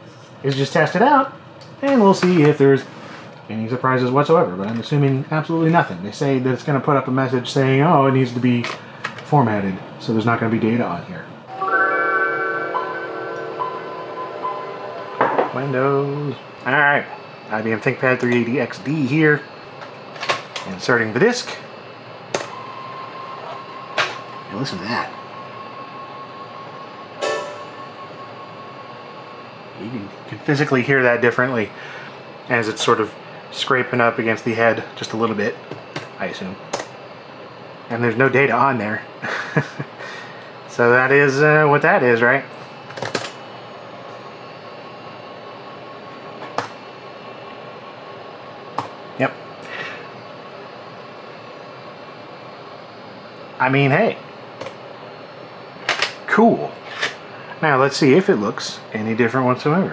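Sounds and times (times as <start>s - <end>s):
room tone hiss: 0.0s - 59.9s.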